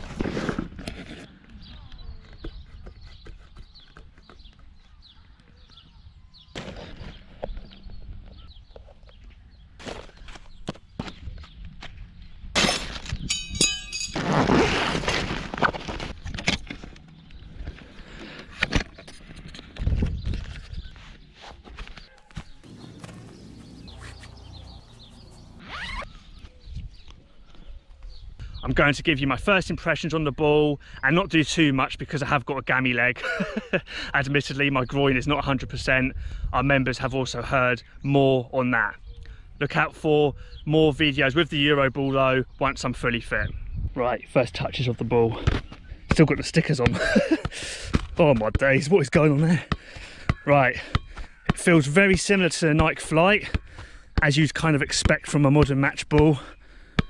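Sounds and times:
zip pulled: 0:14.2 - 0:15.8, 0:25.6 - 0:26.2
wind buffeting microphone: 0:42.9 - 0:44.8.

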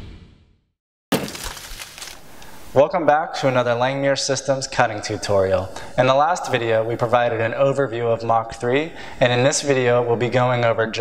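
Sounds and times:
crash with crackle: 0:01.1 - 0:02.2.

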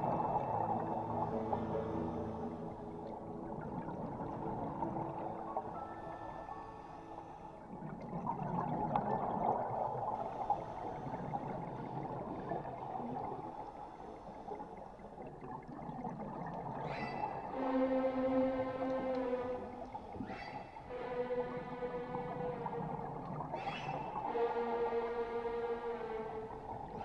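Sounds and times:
faint steady tones: 0:00.0 - 0:27.0
underwater gurgling rush: 0:00.0 - 0:27.0.

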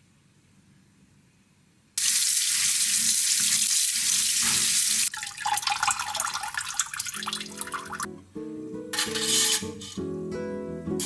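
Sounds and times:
water splashing into steel bowl: 0:02.0 - 0:08.1.

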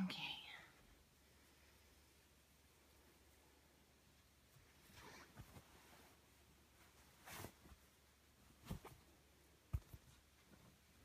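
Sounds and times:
soft whispery vocal sound: 0:00.0 - 0:01.8.

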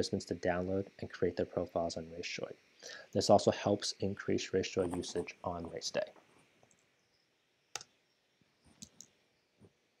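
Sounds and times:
faint computer mouse clicks: 0:07.7 - 0:07.9, 0:08.8 - 0:09.1.

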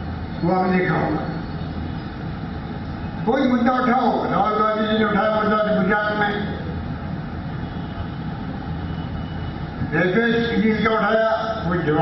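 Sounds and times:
low rumble of hall noise: 0:00.0 - 0:12.0.

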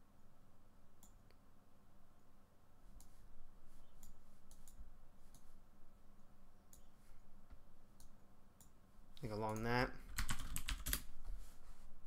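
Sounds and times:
computer mouse clicking: 0:03.9 - 0:05.5, 0:08.0 - 0:08.8.

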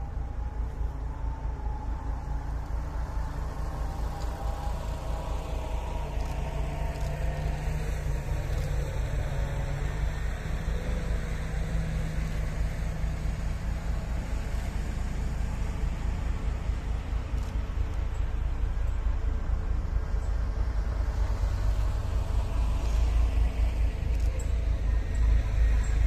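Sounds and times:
heavy diesel engines working: 0:00.0 - 0:26.0.

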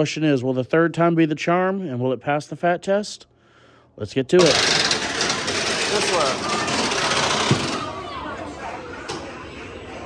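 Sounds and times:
faint voices: 0:04.5 - 0:10.0.

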